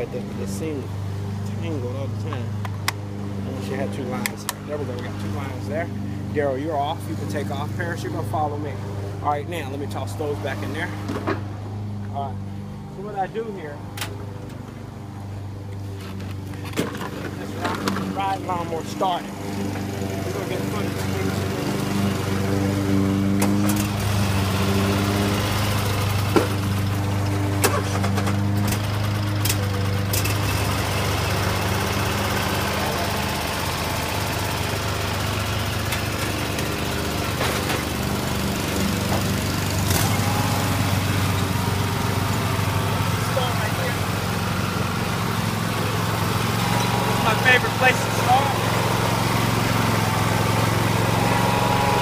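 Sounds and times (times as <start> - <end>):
riding mower engine running: 0.0 - 52.0.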